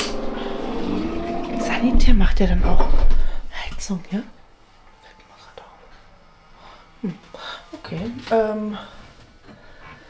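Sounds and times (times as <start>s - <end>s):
woman speaking: 1.6s - 4.4s, 7.8s - 9.0s.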